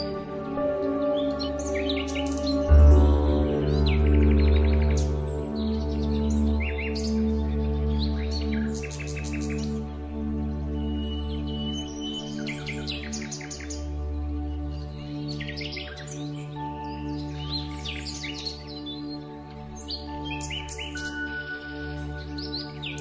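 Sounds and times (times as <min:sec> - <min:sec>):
calm slow music: 0:00.0 - 0:23.0
songbirds chirping and trilling: 0:00.0 - 0:23.0.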